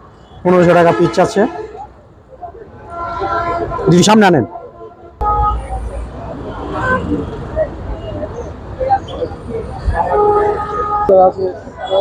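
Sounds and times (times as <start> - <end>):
crowd voices outdoors: 0.0 - 12.0.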